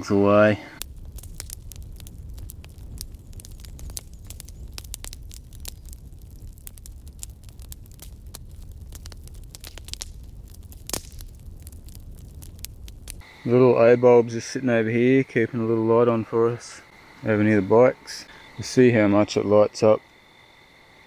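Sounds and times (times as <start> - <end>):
campfire crackling and popping: 0.4 - 13.3
steady low rumble: 0.7 - 18.7.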